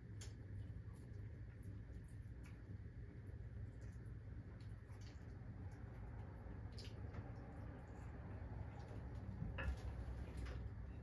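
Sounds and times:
small wet clicks: 0.0 - 10.7
low steady hum: 0.0 - 11.0.

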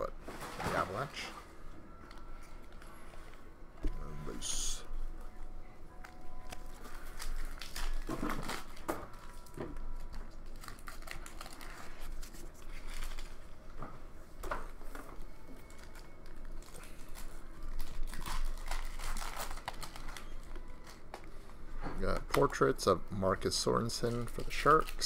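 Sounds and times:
foil wrappers crinkling and tearing: 6.4 - 13.5, 15.6 - 21.3, 23.6 - 25.0.

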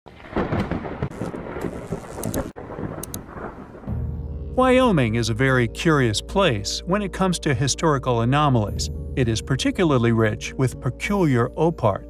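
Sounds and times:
sharp crackles: 0.1 - 4.0.

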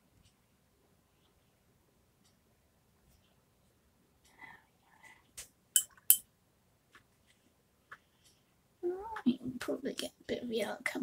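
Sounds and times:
faint soft sounds: 0.0 - 6.0.

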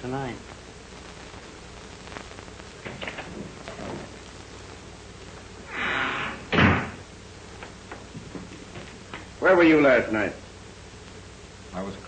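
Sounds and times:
door slamming shut: 6.5 - 7.0.

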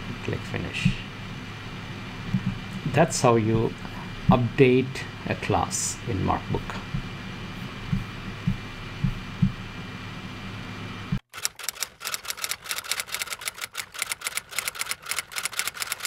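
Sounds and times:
steady room hum: 0.0 - 11.2
soft low thumps: 2.3 - 2.6, 6.7 - 7.2, 7.8 - 9.7
typewriter keys clicking: 11.4 - 16.0.

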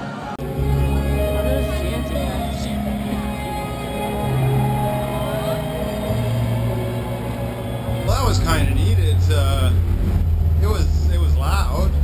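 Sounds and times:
live rock band music: 0.4 - 9.2
held low notes: 0.4 - 12.0.

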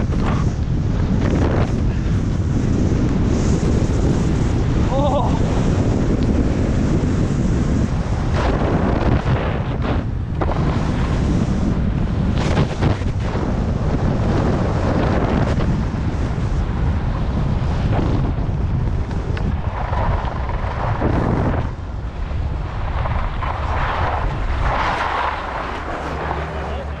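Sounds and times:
wind buffeting microphone: 0.0 - 27.0
skis scraping on snow: 5.4 - 27.0.

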